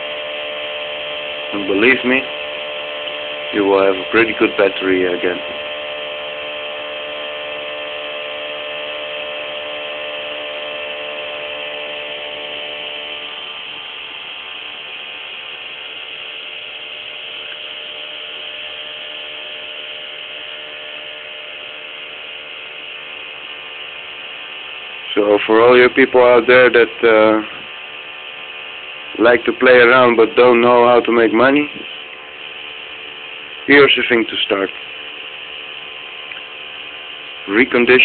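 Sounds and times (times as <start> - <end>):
pulse motor buzzing whir: 0.0 - 38.0.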